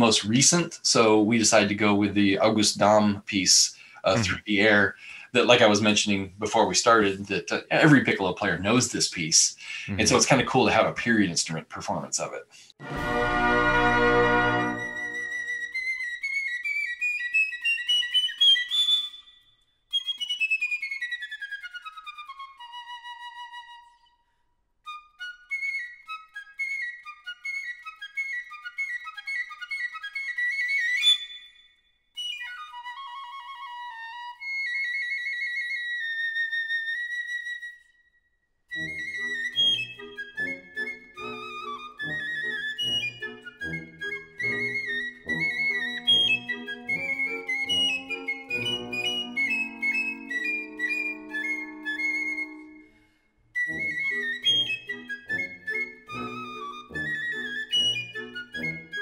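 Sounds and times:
brass band low notes: 0:12.8 - 0:15.2
piccolo solo runs: 0:12.8 - 0:15.9, 0:38.8 - 0:52.9, 0:53.6 - 0:59.0.

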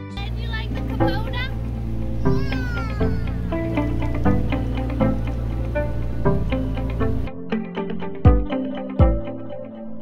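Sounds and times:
background music with steady beat: 0:00.0 - 0:10.0
child squealing: 0:02.2 - 0:03.5.

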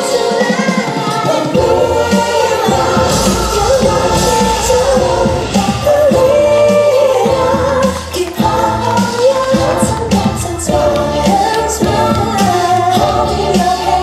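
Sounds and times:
band playing bouncy beat: 0:00.0 - 0:14.0
woman singing: 0:00.0 - 0:14.0.

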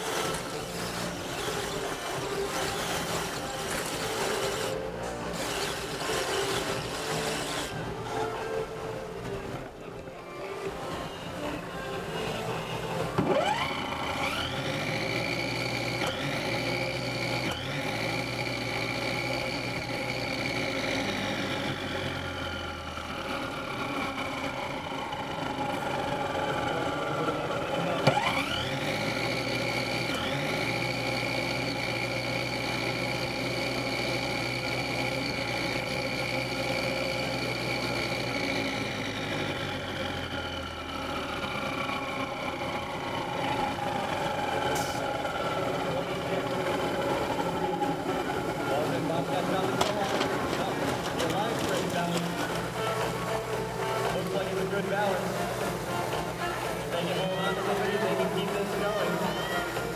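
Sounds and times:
electric motors whining: 0:00.0 - 0:59.9.

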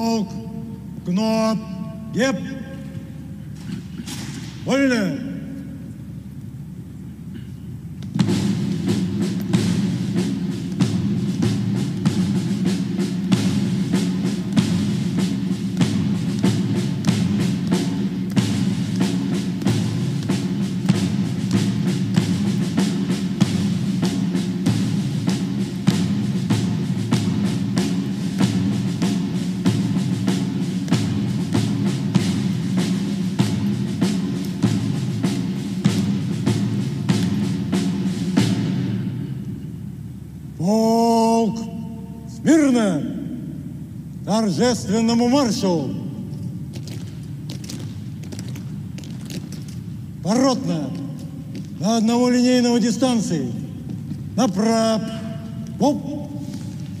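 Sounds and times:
military band playing a march: 0:00.0 - 0:57.0.

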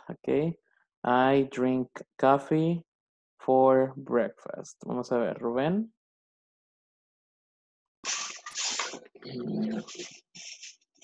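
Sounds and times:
dog vocalizing over video call: 0:08.1 - 0:10.7.

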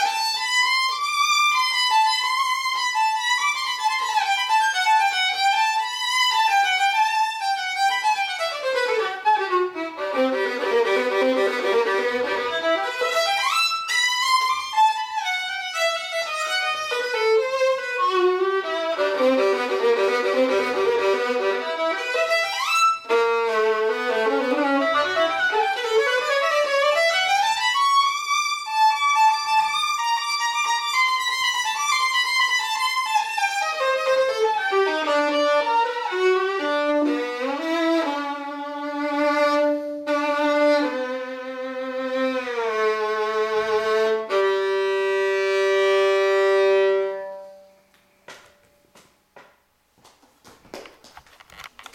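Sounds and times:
solo violin bowed: 0:00.0 - 0:47.9.

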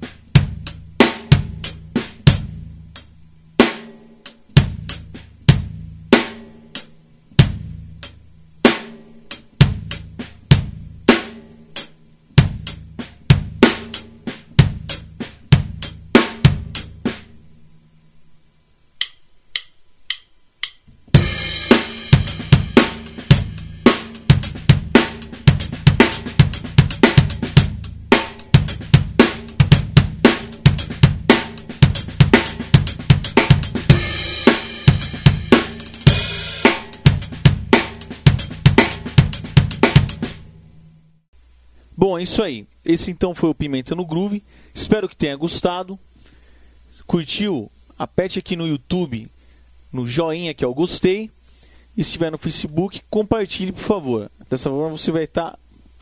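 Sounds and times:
drum kit playing funk groove: 0:00.0 - 0:17.4, 0:19.0 - 0:40.6.

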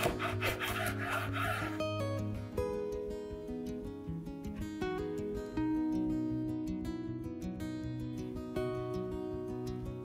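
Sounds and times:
knife sawing through bread crust: 0:00.0 - 0:01.8
soft background music: 0:00.0 - 0:10.0.

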